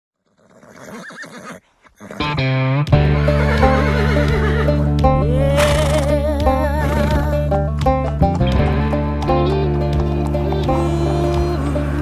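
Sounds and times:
horse whinnying: 0.2 - 2.4, 3.2 - 4.8, 5.4 - 7.3
music with heavy bass beat: 4.7 - 10.7.

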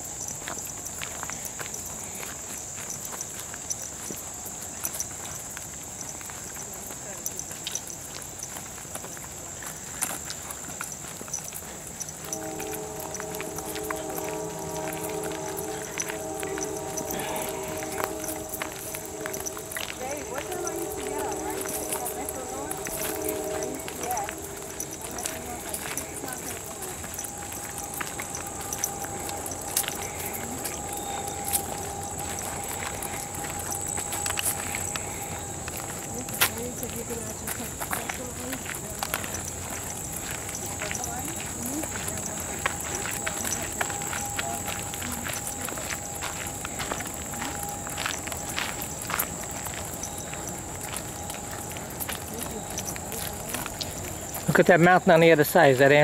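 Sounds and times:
footsteps on gravel trail: 0.0 - 56.0
high-pitched whine: 12.0 - 56.0.

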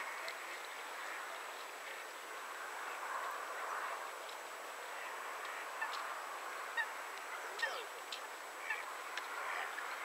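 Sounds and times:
steady background hiss: 0.0 - 10.0
waterfowl calling: 4.9 - 7.9, 8.6 - 8.9.

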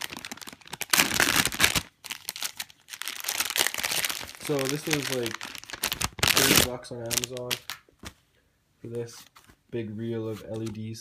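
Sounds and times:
foil bag crinkling: 0.0 - 7.8.

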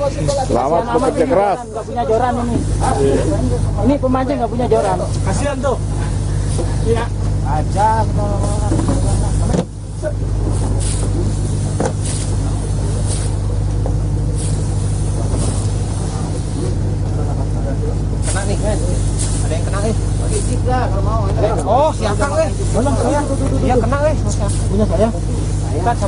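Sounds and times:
boat motor droning: 0.0 - 26.0.

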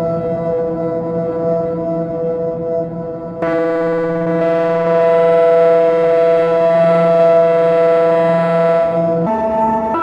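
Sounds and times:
synthesizer drone: 3.4 - 10.0.

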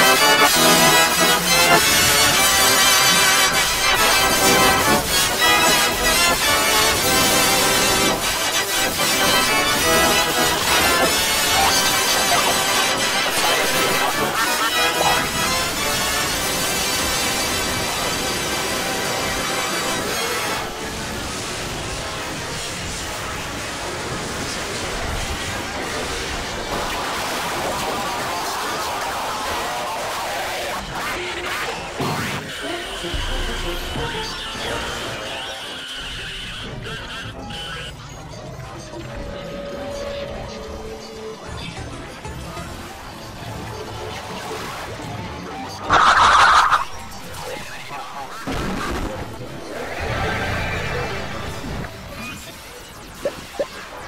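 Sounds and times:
distorted logo music: 0.0 - 37.8, 45.9 - 54.0
harsh static noise: 0.0 - 41.3, 45.8 - 54.0
steady low drone: 32.6 - 36.6
sound effects: 45.8 - 54.0.

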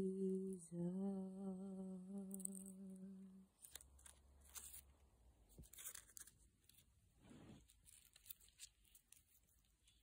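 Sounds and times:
person humming a held note: 0.0 - 3.5.

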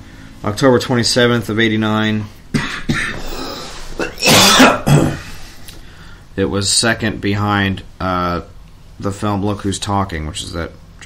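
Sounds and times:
person coughing: 2.5 - 5.4.

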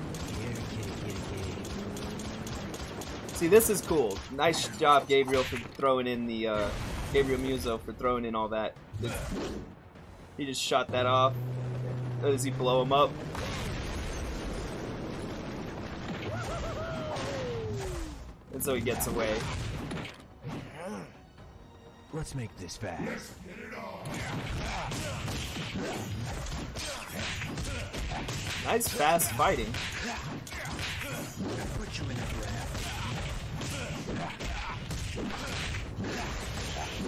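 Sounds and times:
low hum: 0.0 - 3.4, 10.0 - 16.8
explosion rumble: 10.9 - 18.5.

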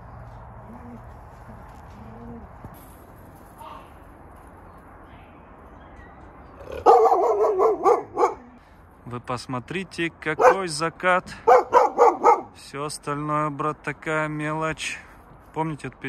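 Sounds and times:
dog yelping: 6.6 - 8.6, 10.4 - 10.6, 11.5 - 12.6
dog yowling: 6.6 - 8.6, 11.5 - 12.5.

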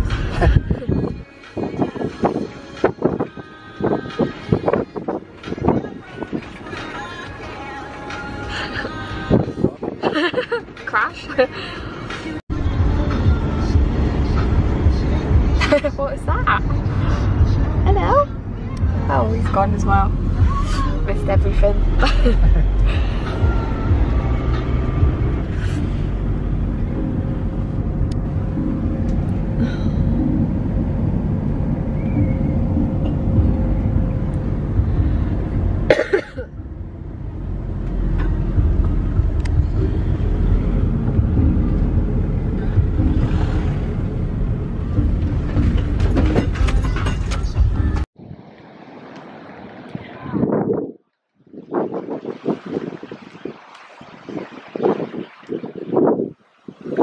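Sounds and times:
car interior road rumble: 0.0 - 50.4.

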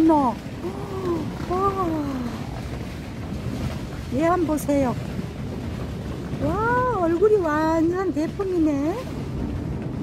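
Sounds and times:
low rumbling wind noise: 0.0 - 10.0.

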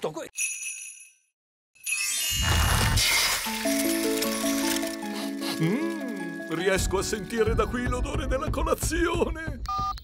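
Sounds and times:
tinkling magic shimmer: 0.4 - 3.9
music with held notes: 3.6 - 7.7.

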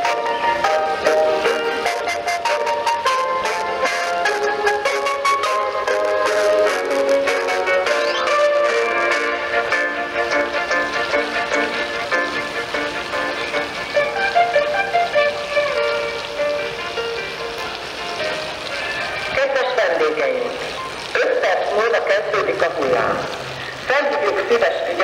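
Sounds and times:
short tune over loudspeakers: 7.8 - 9.4
spoken announcement: 19.3 - 25.0.

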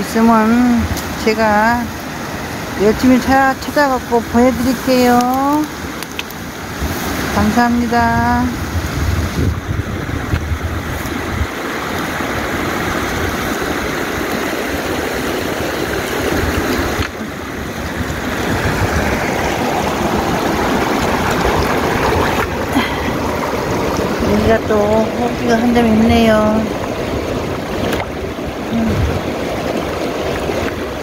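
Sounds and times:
river water running over stones: 0.0 - 31.0.

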